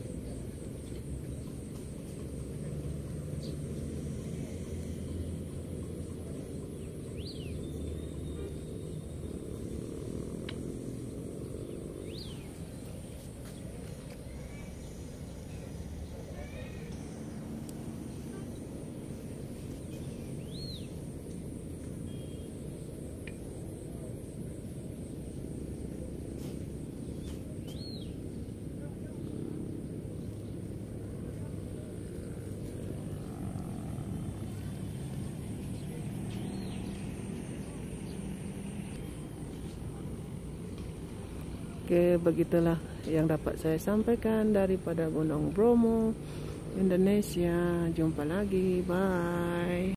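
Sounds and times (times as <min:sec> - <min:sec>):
faint distant voices: 0:00.0 - 0:21.1, 0:22.0 - 0:49.9
bird chirping: 0:11.4 - 0:13.2, 0:19.9 - 0:21.1.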